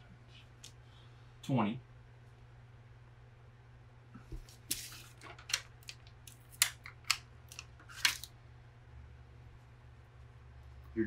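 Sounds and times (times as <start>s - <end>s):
paper rustling and crackling: 4.3s - 8.3s.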